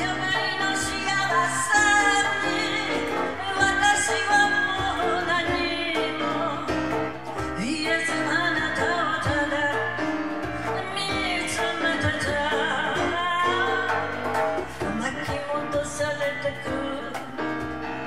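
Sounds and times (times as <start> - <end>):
woman singing a slow ballad: 0.0 - 17.8
light percussion: 0.0 - 18.0
piano: 0.0 - 18.0.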